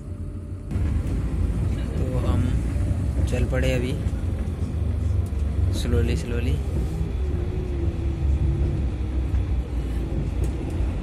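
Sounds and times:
bus engine and road rumble: 0.0s - 11.0s.

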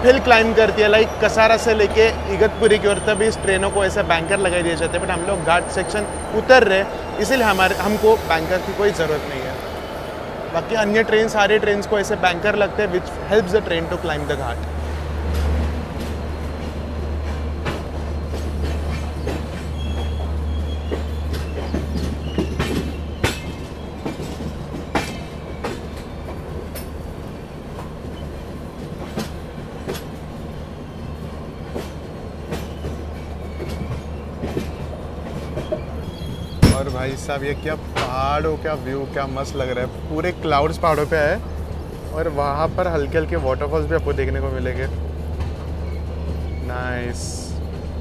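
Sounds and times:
train rumbling: 0.0s - 48.0s.

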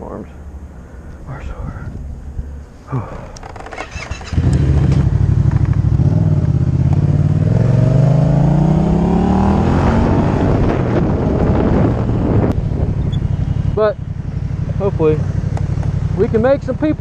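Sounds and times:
motorcycle engine accelerating: 2.9s - 17.0s
wind buffeting microphone: 4.4s - 17.0s.

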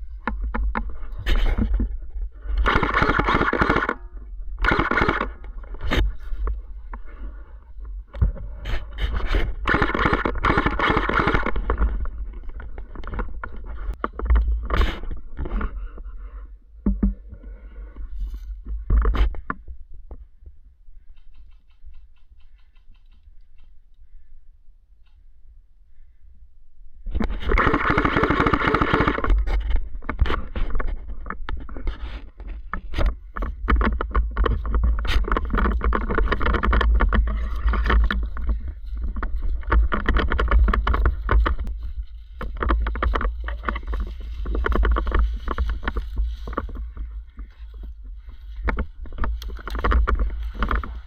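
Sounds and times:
gun clicks and scraping: 0.0s - 16.1s, 21.1s - 24.0s, 25.0s - 25.2s, 27.1s - 51.0s
airsoft rifle full-auto bursts: 2.6s - 4.0s, 4.6s - 5.4s, 9.6s - 11.6s, 27.5s - 29.3s.

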